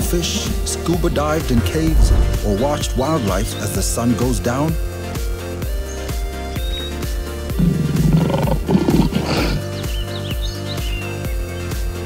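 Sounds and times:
background music with bass beat: 0:00.0 - 0:12.0
animal roar: 0:07.6 - 0:09.6
bird chirps: 0:09.8 - 0:11.6.

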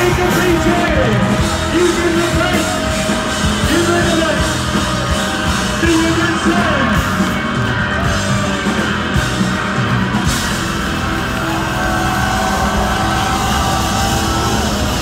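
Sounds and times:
drums: 0:00.0 - 0:15.0
electric guitars: 0:00.0 - 0:15.0.

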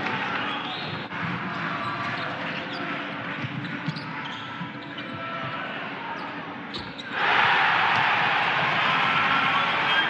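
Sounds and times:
sneakers squeaking: 0:00.5 - 0:05.5, 0:06.2 - 0:08.1
crowd roaring: 0:07.2 - 0:10.0.

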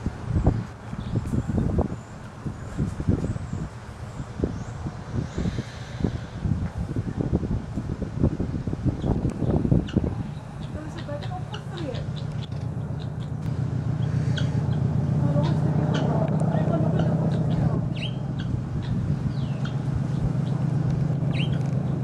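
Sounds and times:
low mechanical drone: 0:00.0 - 0:22.0
birds chirping and whistling: 0:08.9 - 0:22.0.

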